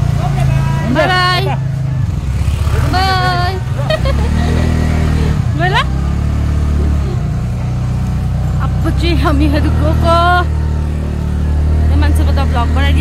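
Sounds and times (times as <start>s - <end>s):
vehicle engine driving off: 0.0s - 13.0s.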